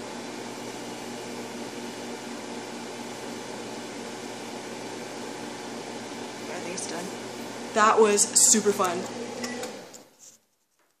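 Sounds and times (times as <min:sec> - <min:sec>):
microwave oven humming: 0:00.0 - 0:10.1.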